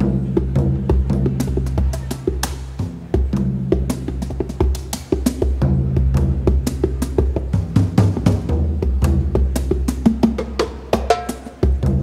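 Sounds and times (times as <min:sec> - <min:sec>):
low sustained bass notes: 0:00.0 - 0:10.2
fast frame drumming: 0:00.0 - 0:12.0.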